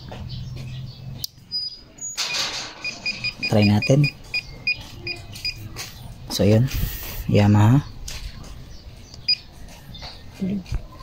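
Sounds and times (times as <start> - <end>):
short high electronic beeps: 2.1 - 4.8.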